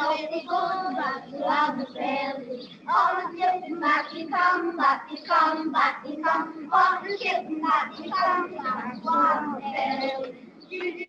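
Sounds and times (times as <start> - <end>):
children singing: 0.0 - 11.0.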